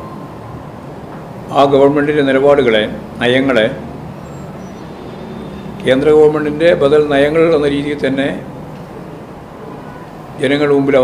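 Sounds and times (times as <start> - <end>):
background noise with low hum: 0.0 - 11.0
man speaking: 5.8 - 8.5, 10.4 - 11.0.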